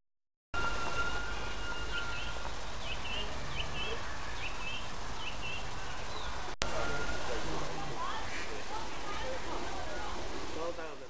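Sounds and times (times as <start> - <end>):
thin steady tone: 0.6 - 4.1, 6.6 - 10.2
steady background noise: 0.6 - 11.0.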